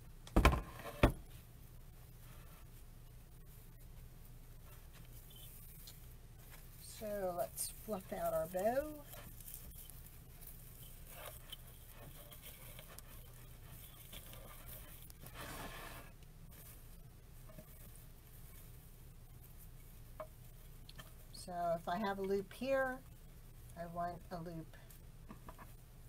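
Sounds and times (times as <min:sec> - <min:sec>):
steady low hum: 0:00.0 - 0:26.0
ribbon rustling and crinkling: 0:03.4 - 0:21.4.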